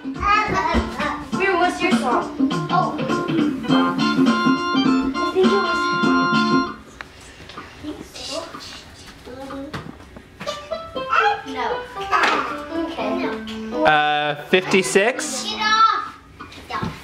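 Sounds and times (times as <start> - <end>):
child singing or talking: 0.1 - 1.4, 5.2 - 6.0, 7.8 - 9.9, 11.1 - 13.5, 14.6 - 17.0
toy keyboard organ notes: 3.6 - 6.8.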